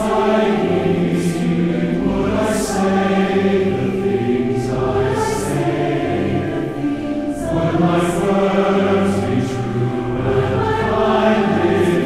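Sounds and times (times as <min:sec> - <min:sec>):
choir singing a hymn: 0:00.0 - 0:12.0.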